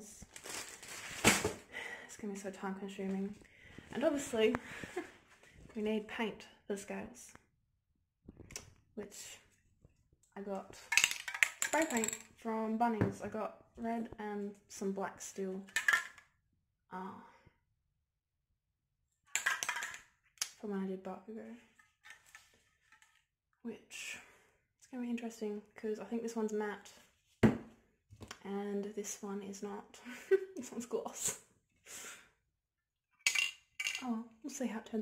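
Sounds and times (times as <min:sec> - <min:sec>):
spray paint cans clinking: 0:10.9 - 0:12.2, 0:33.3 - 0:34.0.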